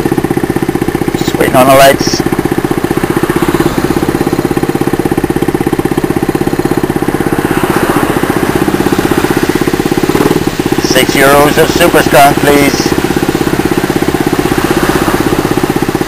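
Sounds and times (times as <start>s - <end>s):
small engine idling: 0.0s - 16.0s.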